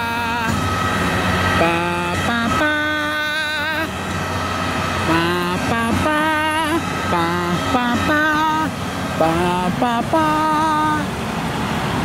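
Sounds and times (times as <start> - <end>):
man singing ba syllables: 1.6 - 3.9, 5.1 - 11.1.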